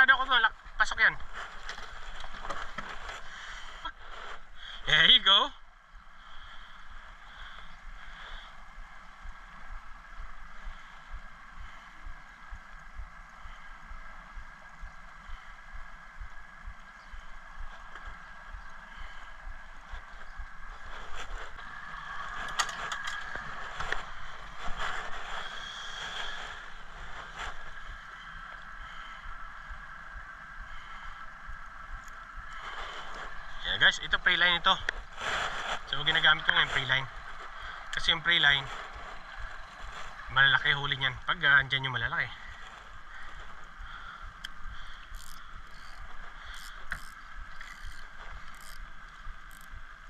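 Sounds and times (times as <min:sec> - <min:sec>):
faint high hum: 0:00.0 - 0:50.0
fishing tackle clicks and rustling: 0:01.2 - 0:04.6, 0:19.6 - 0:28.8, 0:31.4 - 0:50.0.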